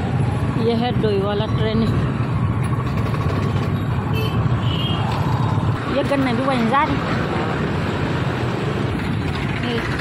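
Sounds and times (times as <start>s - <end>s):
road noise: 0.0s - 10.0s
motorcycle engine running: 2.5s - 4.1s, 8.6s - 10.0s.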